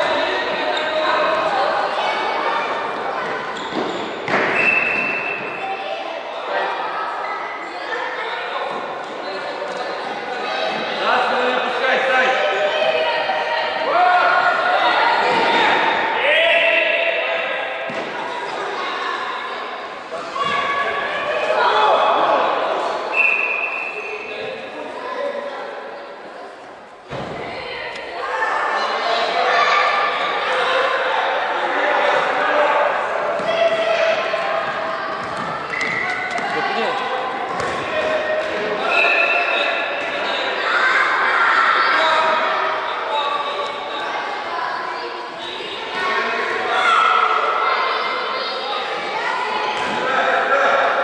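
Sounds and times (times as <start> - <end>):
children shouting and calling: 0.0 - 9.5, 12.2 - 26.2, 27.2 - 51.0.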